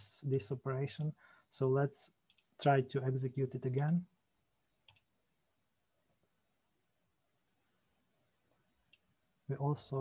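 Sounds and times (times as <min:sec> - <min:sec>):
computer mouse click: 0:02.3 - 0:02.5, 0:04.8 - 0:05.1.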